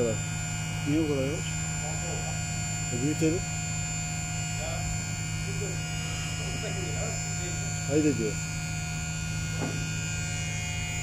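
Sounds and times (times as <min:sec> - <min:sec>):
electric lift drive humming: 0:00.0 - 0:11.0.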